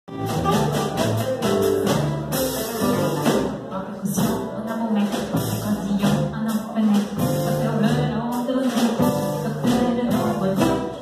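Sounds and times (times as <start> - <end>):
double bass walking: 0.0 - 11.0
light drums: 0.1 - 11.0
woman singing: 0.4 - 11.0.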